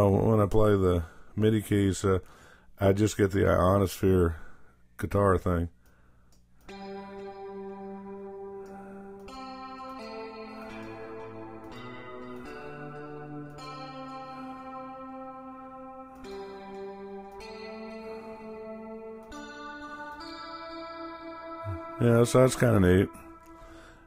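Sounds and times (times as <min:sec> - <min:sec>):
long-ringing guitar notes: 0:06.7 - 0:24.0.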